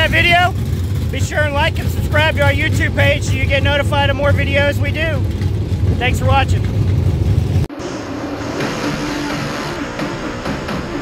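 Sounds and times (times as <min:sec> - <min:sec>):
wind: 0:00.0 - 0:08.8
low rumble of engines: 0:00.0 - 0:11.0
race car engine: 0:00.0 - 0:11.0
music: 0:07.7 - 0:11.0.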